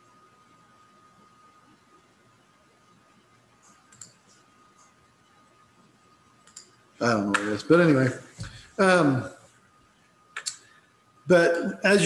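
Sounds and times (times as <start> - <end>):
computer mouse clicking: 3.6 - 5.0, 6.4 - 7.5.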